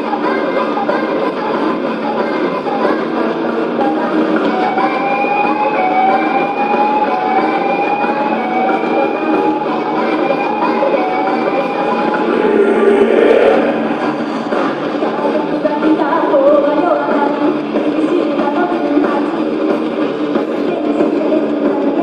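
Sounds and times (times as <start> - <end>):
concert crowd and stage noise: 6.4 - 22.0
rising electronic tone: 10.8 - 15.0.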